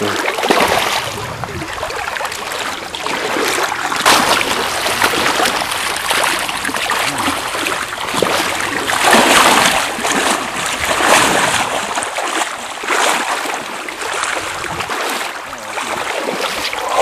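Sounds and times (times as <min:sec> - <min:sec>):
fish splashing in water: 0:00.0 - 0:17.0.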